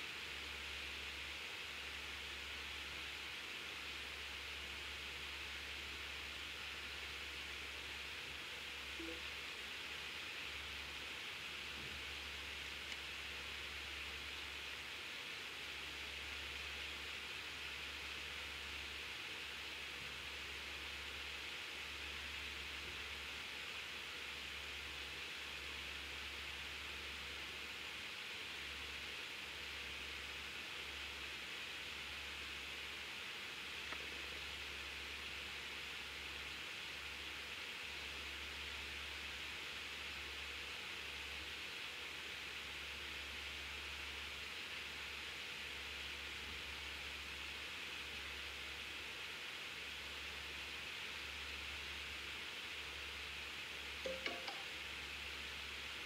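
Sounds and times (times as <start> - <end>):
faint hiss: 0.0 - 56.0
small tick: 12.8 - 13.1, 33.8 - 34.1.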